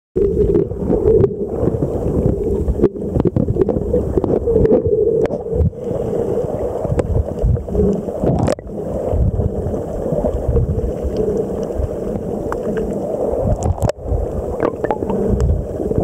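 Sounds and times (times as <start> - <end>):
underwater low rumble: 0.2 - 16.0
sharp underwater clicks: 14.6 - 15.5.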